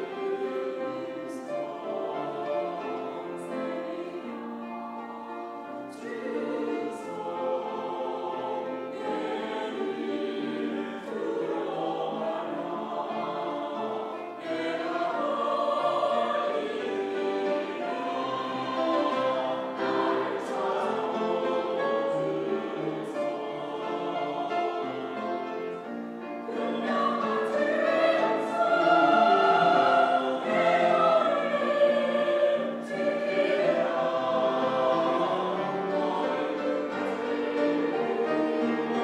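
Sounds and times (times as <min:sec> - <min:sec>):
choir singing: 0:00.0 - 0:39.0
grand piano accompaniment: 0:00.0 - 0:39.0.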